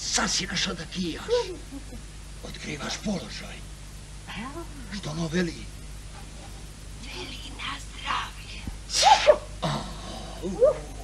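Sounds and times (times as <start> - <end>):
woman stifling sneezes: 8.9 - 9.5.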